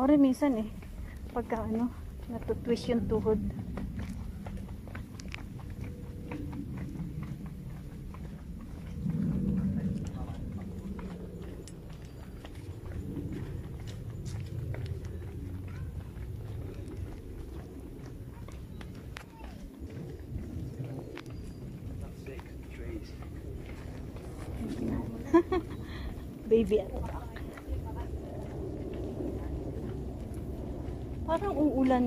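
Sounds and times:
footsteps on paved path: 0:00.0 - 0:32.0.

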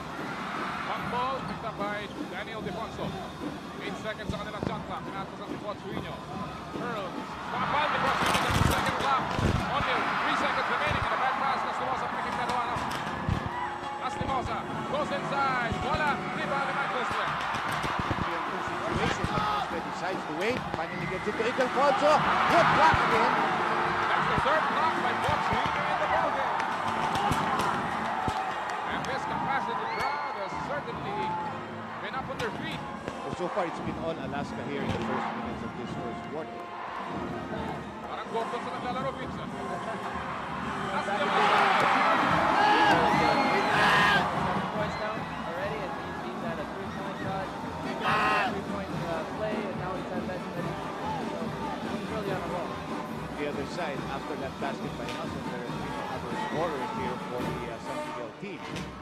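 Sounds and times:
crowd din: 0:00.0 - 0:59.0.

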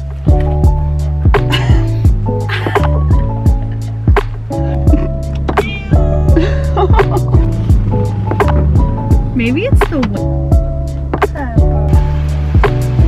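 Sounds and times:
background music with drum beat: 0:00.0 - 0:13.0.

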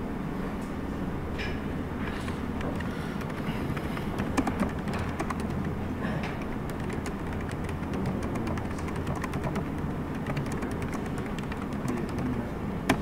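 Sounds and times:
steady low hum: 0:00.0 - 0:13.0
paper sheet knocking: 0:02.6 - 0:12.3.

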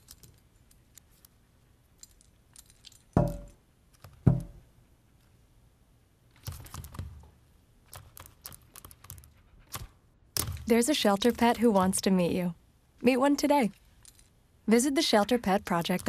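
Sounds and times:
metal collar tag jingling: 0:02.0 - 0:03.6, 0:13.7 - 0:14.4.

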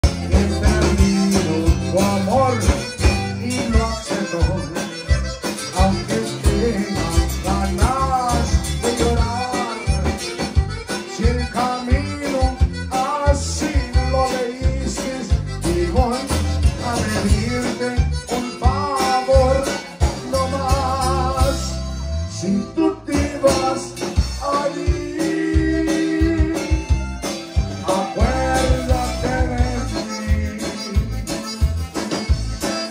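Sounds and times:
steady drum beat: 0:00.0 - 0:21.8, 0:23.1 - 0:32.9
button accordion melody: 0:00.0 - 0:32.9
electric bass: 0:00.0 - 0:32.9
guitar: 0:00.0 - 0:32.9.

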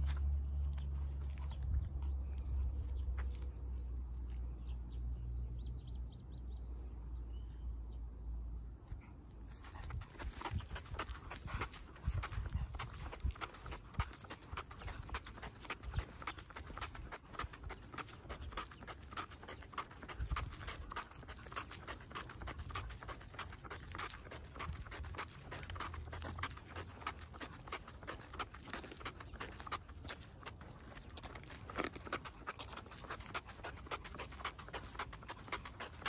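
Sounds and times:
footsteps on asphalt: 0:00.0 - 0:05.9, 0:09.5 - 0:36.0
dog paws tapping on asphalt: 0:00.0 - 0:08.0, 0:08.7 - 0:36.0.

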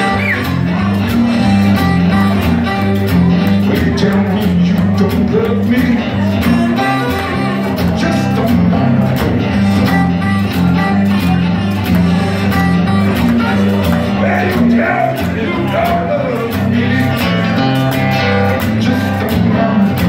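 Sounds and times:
acoustic guitar blues riff: 0:00.0 - 0:20.0.

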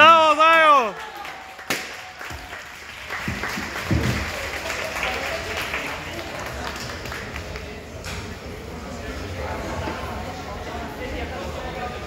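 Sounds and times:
audience applauding: 0:00.5 - 0:07.8.

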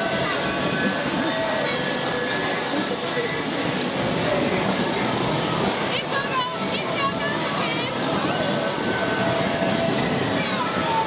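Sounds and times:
crowd voices: 0:00.0 - 0:11.0
ride machinery noise: 0:00.0 - 0:11.0.

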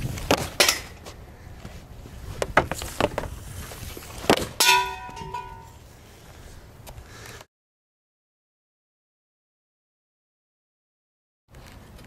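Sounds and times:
hockey stick striking puck: 0:00.2 - 0:01.0, 0:04.2 - 0:05.8
puck clanging off metal post: 0:00.3 - 0:01.0, 0:04.3 - 0:05.8.

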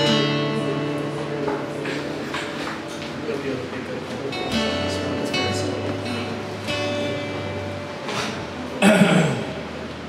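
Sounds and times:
acoustic guitar strummed chords: 0:00.0 - 0:09.9.

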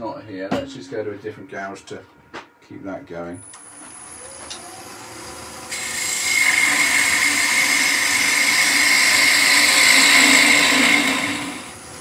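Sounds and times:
gouge cutting wood on lathe: 0:03.5 - 0:12.0.

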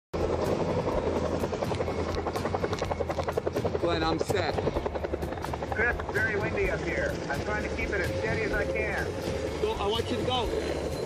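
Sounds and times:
helicopter rotor beating: 0:00.2 - 0:11.0.

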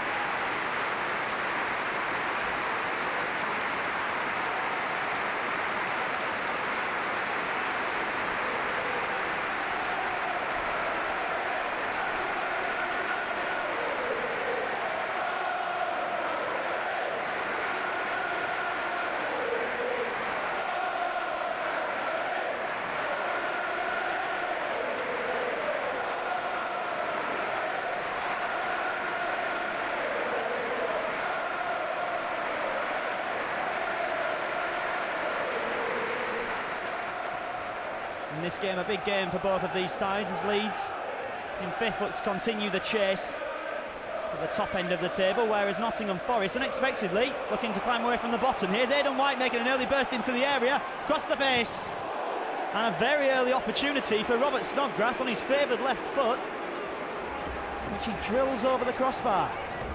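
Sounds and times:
stadium crowd applauding: 0:00.0 - 0:59.9
crowd singing a chant: 0:12.0 - 0:36.4, 0:43.2 - 0:44.5.

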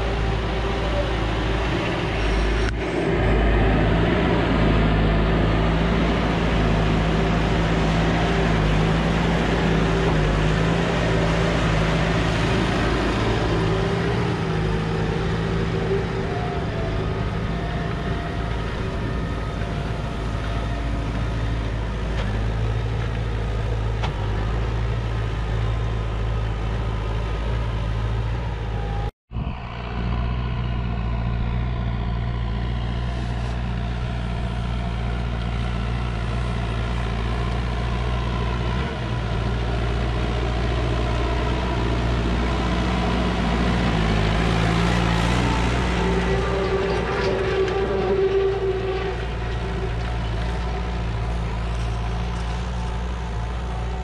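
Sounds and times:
tractor diesel engine under load: 0:00.0 - 0:54.0.

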